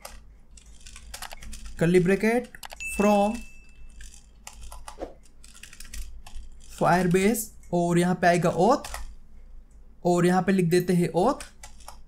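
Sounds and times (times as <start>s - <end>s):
typing on computer keyboard: 0.0s - 7.4s, 8.5s - 9.2s, 11.3s - 12.0s.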